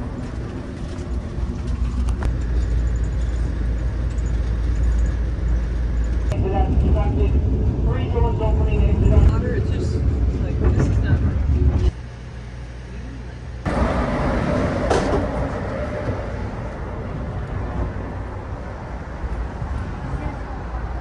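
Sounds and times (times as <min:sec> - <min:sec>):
train rumbling over bridge: 0:00.0 - 0:21.0.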